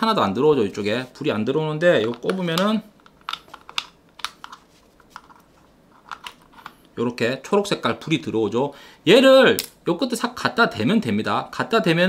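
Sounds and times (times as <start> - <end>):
plastic cable clicks and taps: 2.0 - 4.6.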